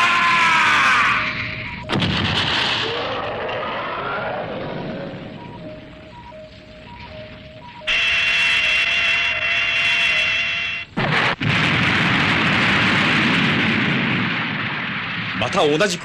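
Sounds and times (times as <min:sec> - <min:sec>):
loud explosion: 0:00.0 - 0:05.5, 0:11.0 - 0:16.0
high steady tone: 0:05.1 - 0:10.9.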